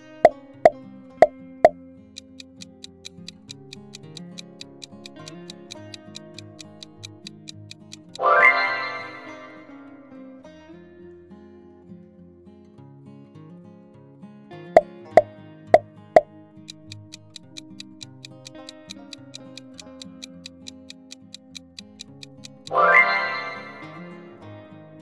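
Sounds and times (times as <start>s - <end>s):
countdown timer ticking: 0.0s - 9.8s, 16.2s - 25.0s
light background music: 0.0s - 11.3s, 14.8s - 25.0s.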